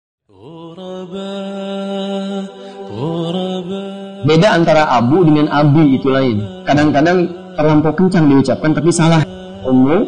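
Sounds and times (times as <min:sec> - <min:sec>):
wordless chanted vocal notes: 0:00.3 - 0:10.0.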